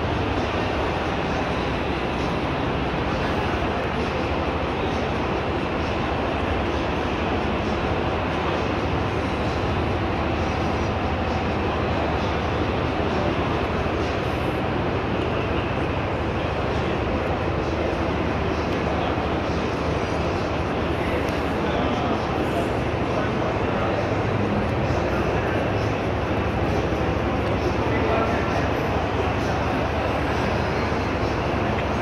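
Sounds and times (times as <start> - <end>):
continuous low rumble: 0.0 - 32.0.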